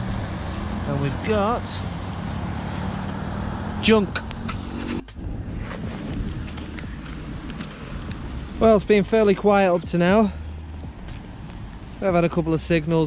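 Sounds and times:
wind blowing on microphone: 4.1 - 9.0.

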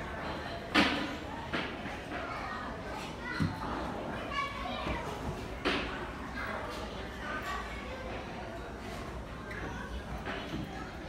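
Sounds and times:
children's voices chattering: 0.0 - 11.0.

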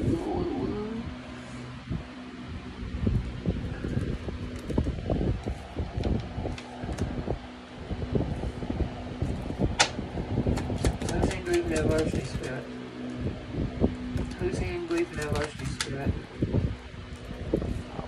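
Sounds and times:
steady low hum: 0.0 - 18.0
sharp card snap: 9.8 - 12.5
cards being shuffled: 9.8 - 12.6, 14.2 - 16.0.

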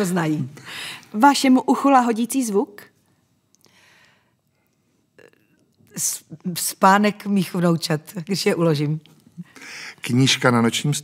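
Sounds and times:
faint breathing: 0.6 - 1.1, 3.6 - 5.1, 9.4 - 10.0
intake of breath: 3.6 - 4.7, 9.6 - 10.0.

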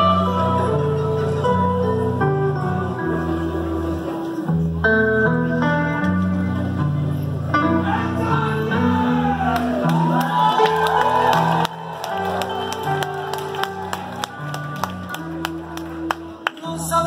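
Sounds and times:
live band playing: 0.0 - 17.0
audience whooping and shouting: 7.8 - 15.4.

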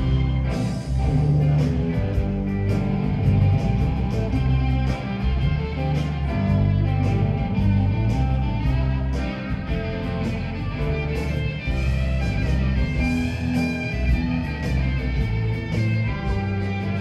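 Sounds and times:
bass line: 0.0 - 17.0
drums: 0.0 - 17.0
electric guitar: 0.0 - 17.0.

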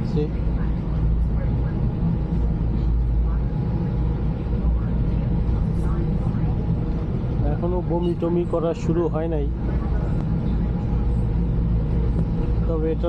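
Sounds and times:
faint voices: 0.0 - 13.0
ferry engines droning: 0.0 - 13.0.

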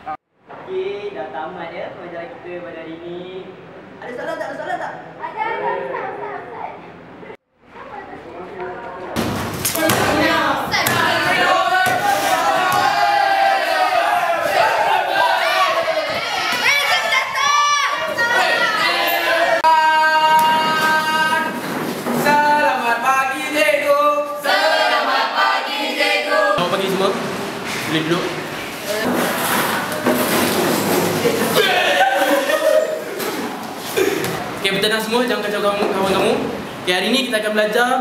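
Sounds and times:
group singing unaccompanied: 9.7 - 16.6, 17.9 - 26.7
students chattering and laughing: 9.7 - 19.6, 28.8 - 34.7.

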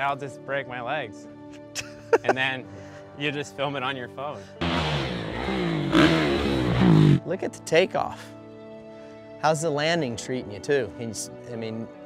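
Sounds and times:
dirt bike engine revving: 4.6 - 7.3.

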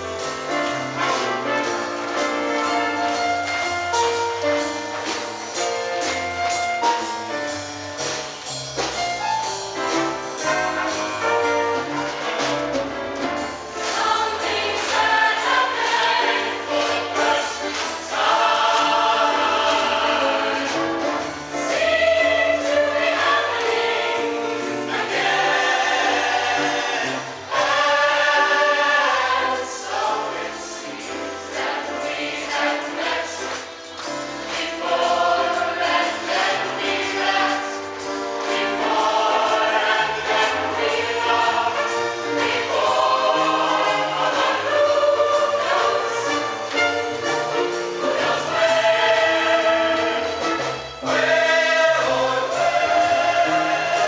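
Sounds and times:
live band with steady beat: 0.0 - 54.0
mixed choir singing in harmony: 0.0 - 54.0.

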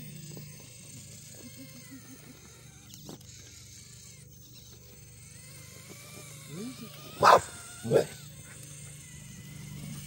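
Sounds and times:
toy car electric motor whining: 0.0 - 10.0.

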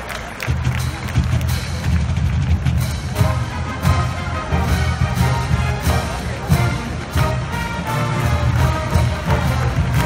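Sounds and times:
marching band brass: 0.1 - 10.0
marching drums beat: 0.4 - 10.0.

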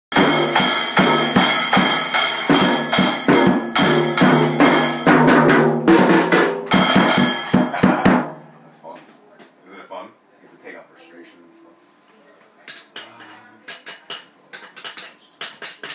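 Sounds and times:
ringing cymbal: 0.1 - 5.1, 6.7 - 7.8
rapid drum strikes: 0.1 - 8.5.

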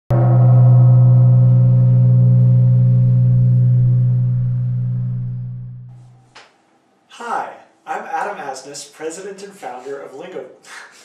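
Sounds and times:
deep gong-like tone: 0.1 - 6.4.

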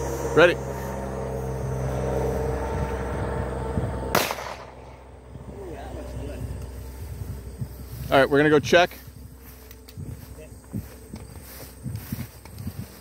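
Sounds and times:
steady low hum: 0.0 - 13.0
handgun shot with echo: 4.2 - 4.8.

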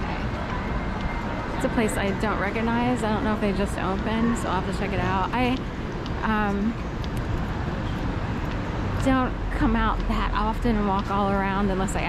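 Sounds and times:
cars driving along road: 0.0 - 12.0.

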